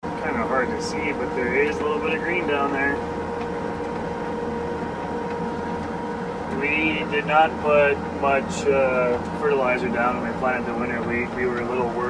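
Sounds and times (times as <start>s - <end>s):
crop sprayer engine drone: 0.0s - 12.0s.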